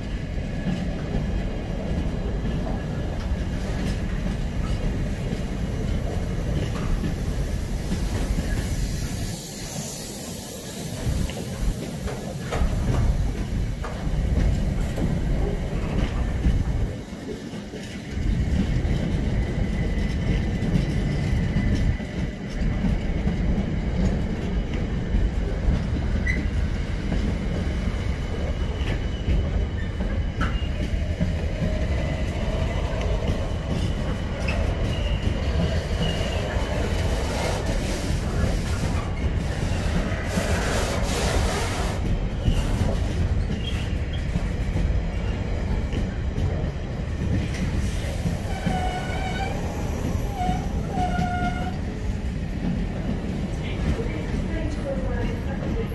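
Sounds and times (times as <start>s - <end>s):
freight train rumbling past: 0.0s - 55.9s.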